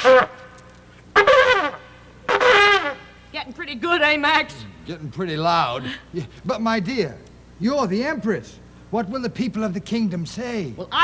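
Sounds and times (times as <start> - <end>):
trumpet blasts: 0.0 - 3.3.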